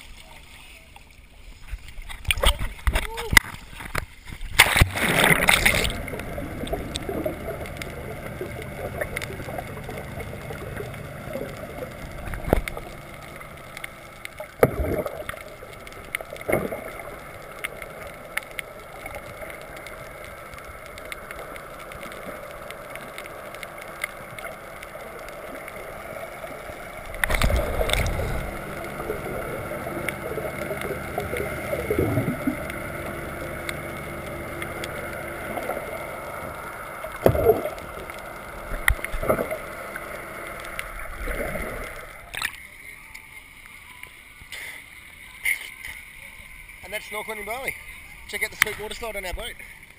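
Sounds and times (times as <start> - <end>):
faint hum: 0.0 - 49.9
underwater rush of water: 0.0 - 49.9
knocks and gurgles: 1.7 - 13.6, 14.5 - 15.4, 27.0 - 40.0
bubbling water surge: 4.4 - 42.6.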